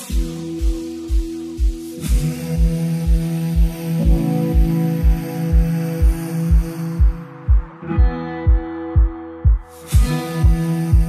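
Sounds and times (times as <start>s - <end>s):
kick drum beat: 0.0s - 11.0s.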